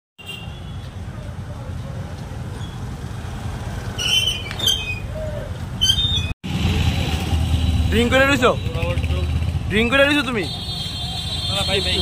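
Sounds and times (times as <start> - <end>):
street traffic rumble: 0.2 - 12.0.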